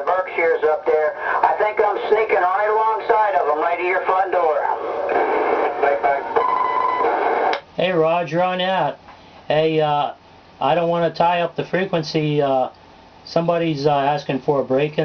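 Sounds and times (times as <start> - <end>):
man's voice over radio: 0.0 - 4.8, 5.6 - 6.4
radio static hiss: 0.0 - 15.0.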